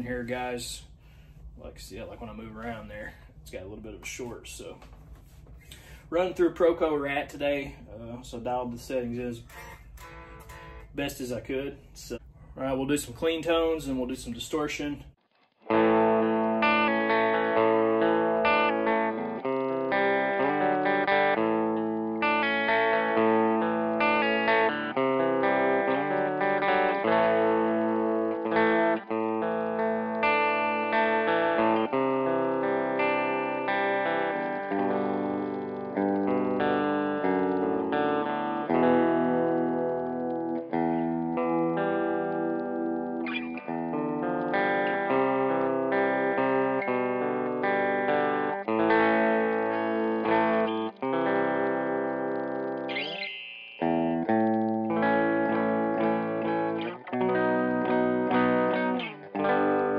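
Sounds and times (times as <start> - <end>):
electric guitar strumming and picking: 1.9 - 11.7, 13.1 - 59.9.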